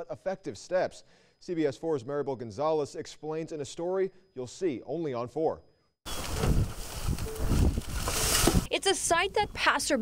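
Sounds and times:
plastic bags and trash rustling: 0:06.1 - 0:08.7
wind rumbling on microphone: 0:06.1 - 0:08.7.

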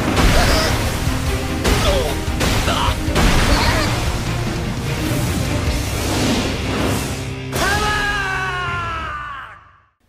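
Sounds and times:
background music: 0:00.0 - 0:09.8
man shouting: 0:07.6 - 0:09.9.

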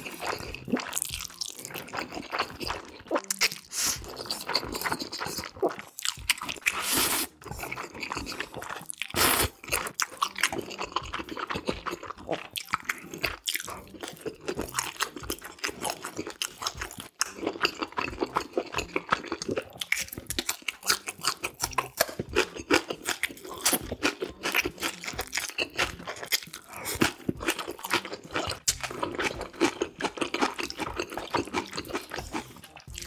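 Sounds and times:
wet chewing and crunching: 0:00.0 - 0:33.0
noodle slurps: 0:06.6 - 0:09.6.

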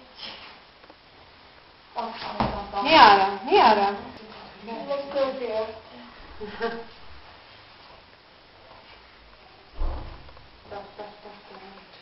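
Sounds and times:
dull thump: 0:09.8 - 0:10.5.

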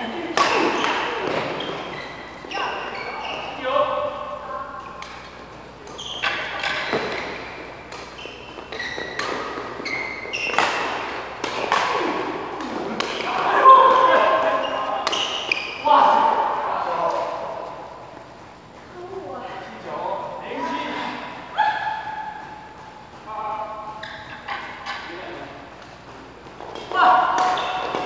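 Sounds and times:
rackets hitting shuttlecock: 0:00.2 - 0:03.5, 0:04.8 - 0:18.3, 0:21.1 - 0:28.0.

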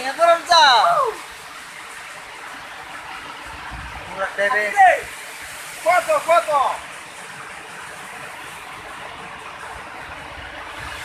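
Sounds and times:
waterfall pouring onto rocks: 0:00.0 - 0:11.0.

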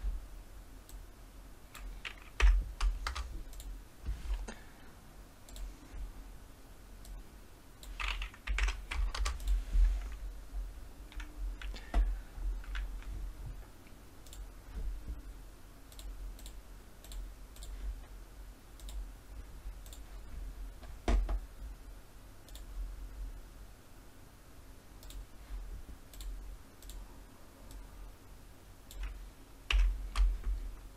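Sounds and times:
low steady hum: 0:00.0 - 0:30.9
keyboard keys clicking: 0:01.8 - 0:03.7, 0:07.8 - 0:10.2, 0:28.9 - 0:30.3.

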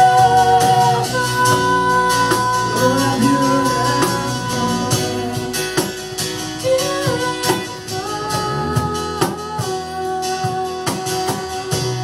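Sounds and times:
live band playing: 0:00.0 - 0:12.0
sliding held melody notes: 0:00.0 - 0:12.0.

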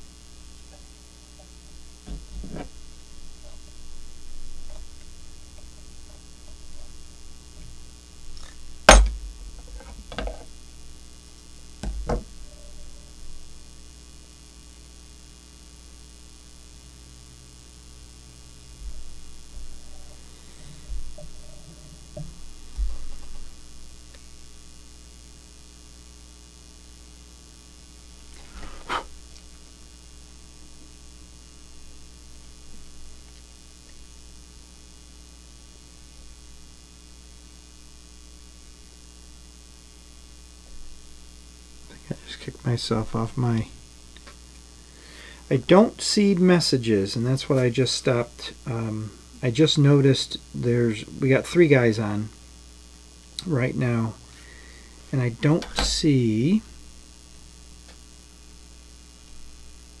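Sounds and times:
electrical mains hum: 0:00.0 - 1:00.0.

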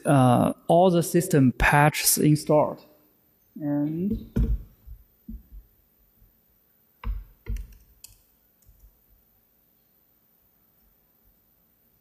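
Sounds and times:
low thumps on laptop: 0:04.0 - 0:05.7.

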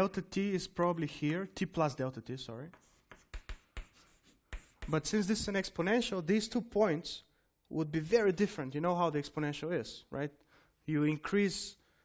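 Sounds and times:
scratchy writing strokes: 0:02.7 - 0:05.6.

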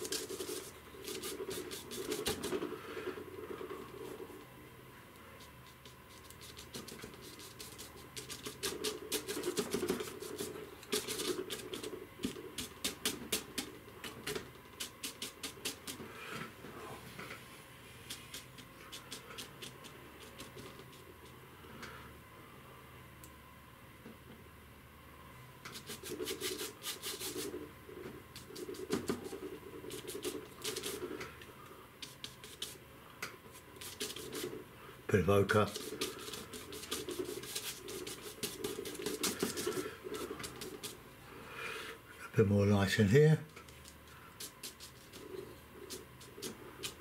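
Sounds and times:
brush tapping and scratching on panel: 0:00.0 - 0:04.5, 0:05.4 - 0:16.4, 0:18.0 - 0:21.4, 0:25.7 - 0:31.4, 0:32.0 - 0:34.6, 0:35.4 - 0:41.0, 0:43.5 - 0:47.0.

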